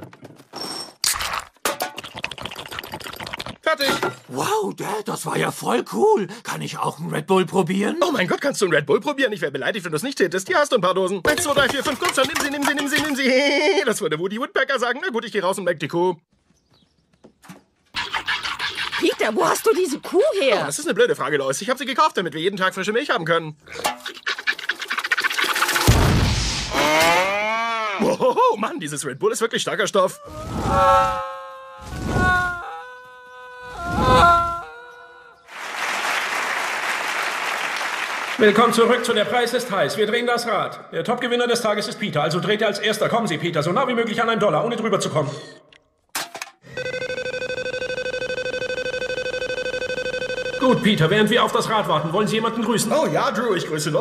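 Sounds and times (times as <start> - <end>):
milk squirting into metal pail: 1.0 - 3.6
loud blast of fire: 25.9 - 26.8.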